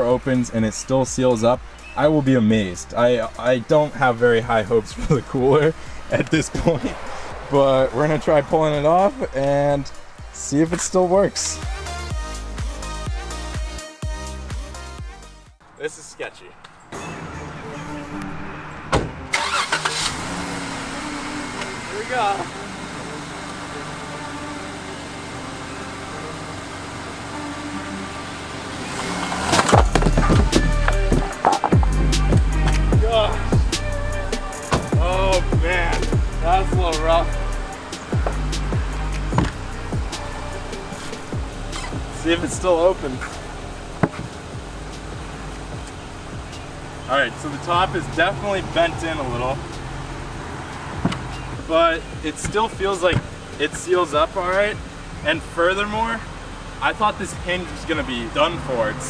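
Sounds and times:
car engine idling: 0:00.0 - 0:13.6, 0:14.3 - 0:59.0
car door slamming: 0:18.7 - 0:19.5, 0:29.0 - 0:33.3, 0:34.5 - 0:35.2, 0:38.1 - 0:44.5, 0:50.9 - 0:51.6, 0:52.2 - 0:53.8.

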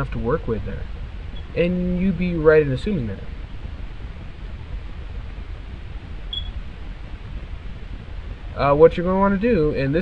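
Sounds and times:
microphone hum and hiss: 0:00.0 - 0:10.0.

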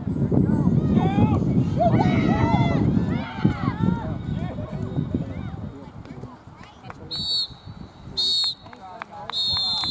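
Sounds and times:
referee's whistle blasts: 0:07.1 - 0:08.7, 0:09.3 - 0:09.9.

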